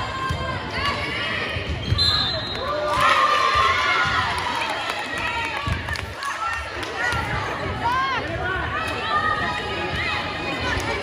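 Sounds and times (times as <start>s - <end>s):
people chattering and calling out: 0.0s - 11.0s.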